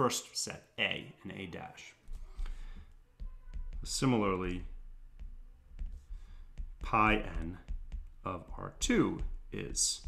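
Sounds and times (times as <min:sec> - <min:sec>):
stylus tapping on tablet screen: 0:02.1 - 0:10.0
man speaking: 0:03.8 - 0:04.8, 0:06.8 - 0:10.0.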